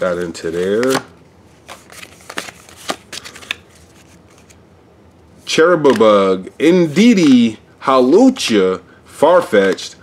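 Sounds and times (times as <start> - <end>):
trading cards sliding: 0.0 - 4.6.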